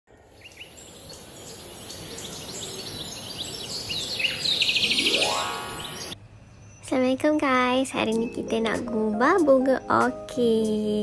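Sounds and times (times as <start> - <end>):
steady high hiss: 0.1 - 6.2
birds chirping: 0.1 - 8.9
rising tone: 4.9 - 6.2.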